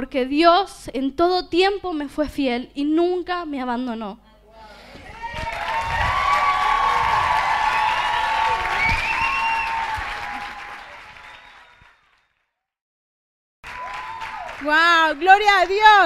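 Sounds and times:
voices calling out and cheering: 4.5s - 11.0s
audience applauding: 5.2s - 12.4s, 13.6s - 16.0s.

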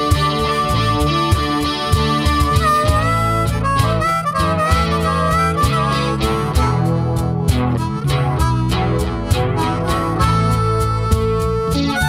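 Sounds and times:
blues harmonica solo: 0.0s - 12.0s
live band with bass: 0.0s - 12.0s.

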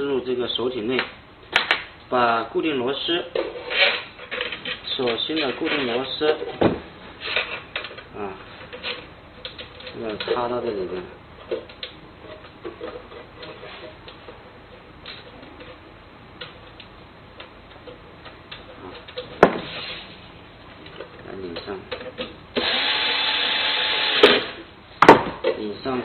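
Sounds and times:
electric screwdriver running: 22.6s - 24.6s.

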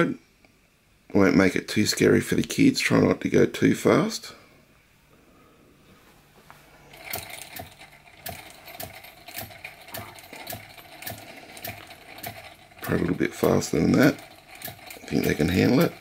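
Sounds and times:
toy steam engine clicking: 6.9s - 16.0s.

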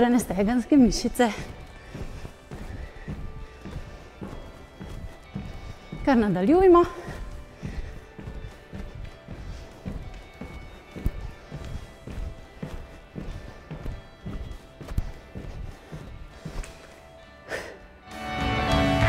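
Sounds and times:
background music: 0.0s - 19.0s
sneakers thudding on wooden floor: 0.8s - 16.8s.

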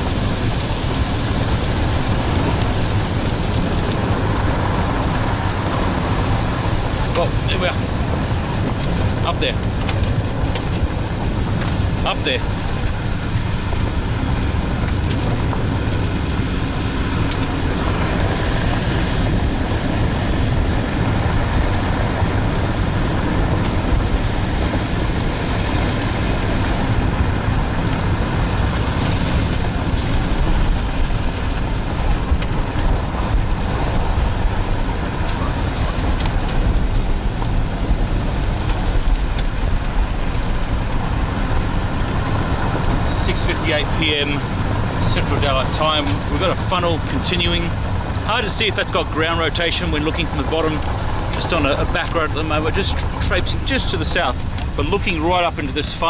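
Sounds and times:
vehicle road and engine noise: 0.0s - 56.0s.

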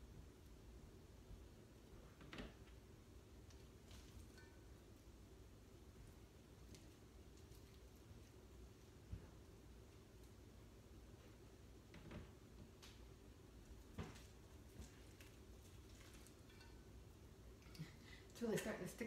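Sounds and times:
faint room hum: 0.0s - 19.0s
soft spoon clicks and rustles: 6.4s - 8.5s, 14.1s - 17.8s.

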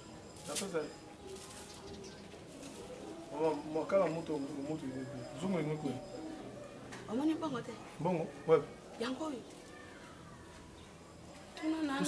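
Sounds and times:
bird cooing: 0.7s - 8.8s.

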